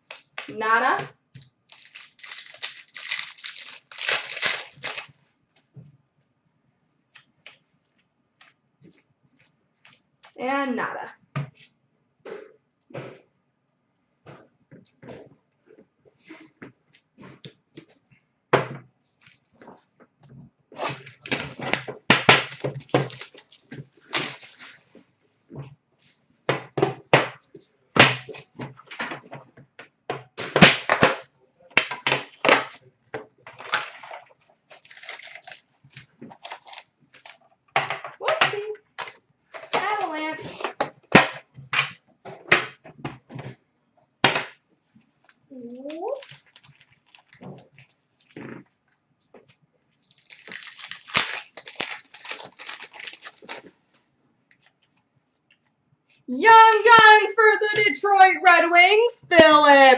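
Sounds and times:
foil wrapper crinkling: 1.4 - 5.2, 21.1 - 24.9, 33.6 - 37.5, 45.8 - 48.4, 50.0 - 53.8.

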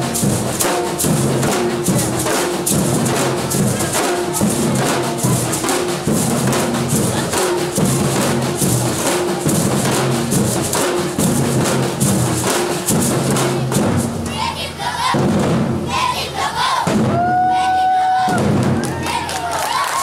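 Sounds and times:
drums playing rhythm: 0.0 - 20.0.

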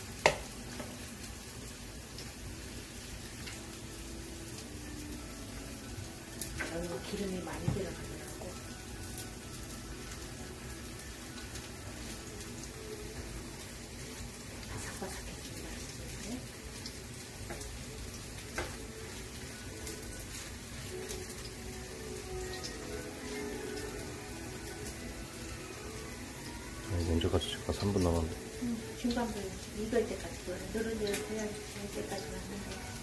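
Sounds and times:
pancakes sizzling in oil: 0.0 - 33.0.

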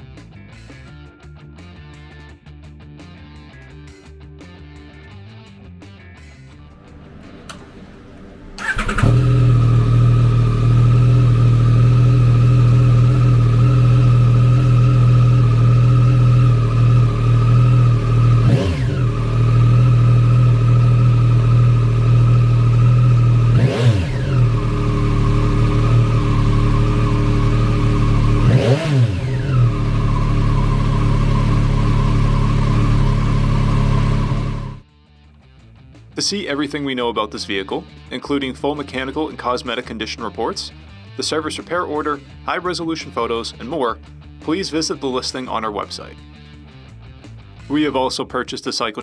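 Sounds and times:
motorcycle engine idling: 6.9 - 34.8
motorcycle throttle blips: 7.0 - 34.8.

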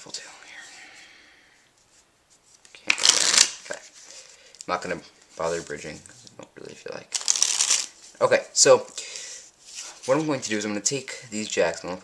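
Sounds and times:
playing cards riffle-shuffled: 1.8 - 4.3, 7.1 - 8.2.

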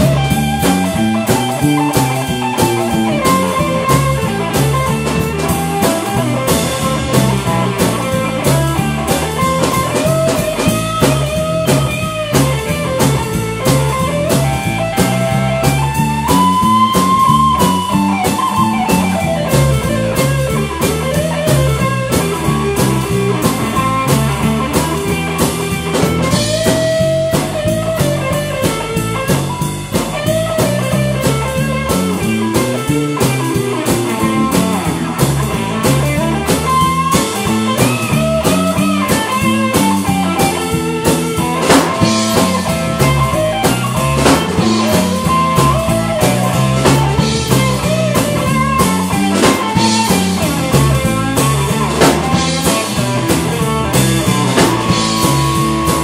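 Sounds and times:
drum kit beat: 0.0 - 56.0
electric bass: 0.0 - 56.0
electric guitar lead lines: 0.0 - 56.0.

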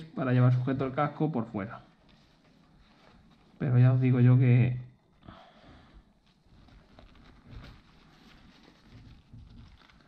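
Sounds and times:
backpack fabric rustling: 6.2 - 10.0.

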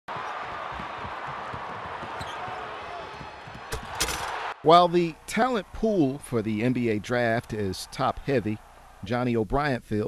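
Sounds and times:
basketball bouncing on court: 0.1 - 4.0
arena crowd noise: 0.1 - 9.4.

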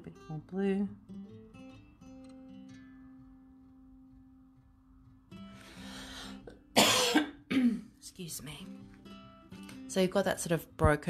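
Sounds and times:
person coughing: 6.7 - 7.9.

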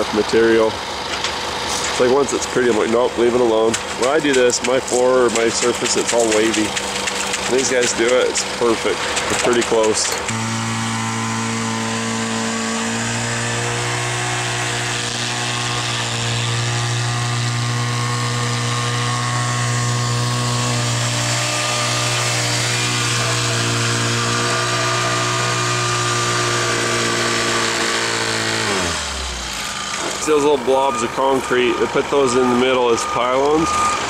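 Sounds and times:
small engine running steadily: 0.0 - 34.0.

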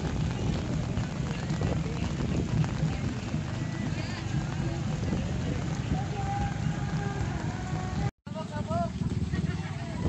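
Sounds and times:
motorcycles passing on wet road: 0.0 - 10.0
voices: 0.0 - 10.0
music: 1.0 - 8.1.

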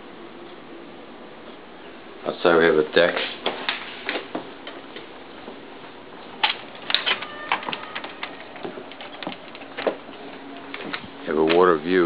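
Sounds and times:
faint door squeak: 7.0 - 8.8.

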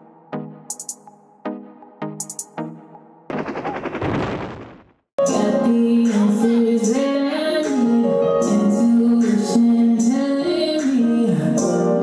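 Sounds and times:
machine-gun fire: 3.3 - 5.0.

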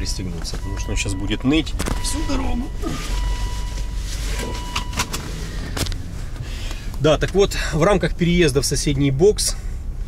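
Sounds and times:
seatbelt reminder tone: 0.0 - 5.3
car engine running: 0.0 - 9.2.

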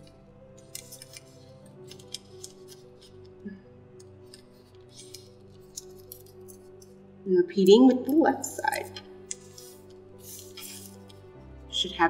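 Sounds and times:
soft background music: 0.0 - 12.0
paper crackling and rustling: 0.6 - 3.2, 4.3 - 6.6.

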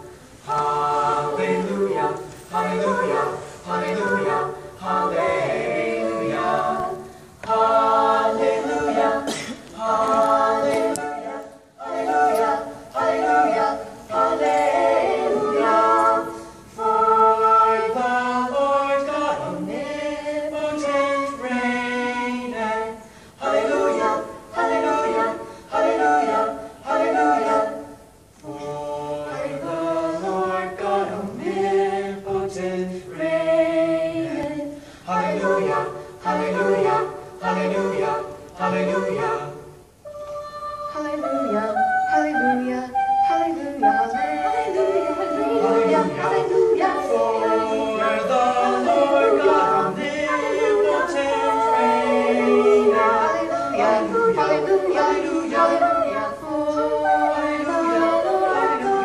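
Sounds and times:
group singing a cappella: 0.0 - 59.0.

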